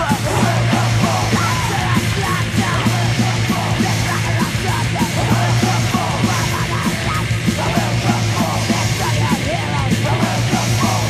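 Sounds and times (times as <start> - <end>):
distorted electric guitars: 0.0 - 11.0
drums on a quick beat: 0.0 - 11.0
shouted vocals: 0.0 - 11.0.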